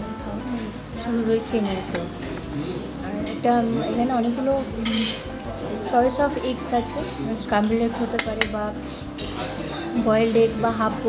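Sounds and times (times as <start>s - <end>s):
dishes and cutlery clinking: 0.5s - 11.0s.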